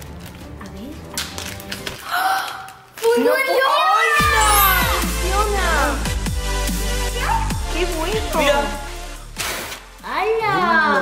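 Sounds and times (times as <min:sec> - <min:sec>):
plastic bag crinkling: 0:00.0 - 0:03.8
person gasping: 0:02.0 - 0:02.8.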